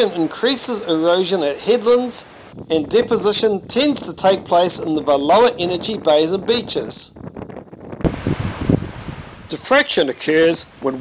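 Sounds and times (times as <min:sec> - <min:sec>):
wind buffeting microphone: 0:00.0 - 0:11.0
surf on rocky shore: 0:08.0 - 0:11.0.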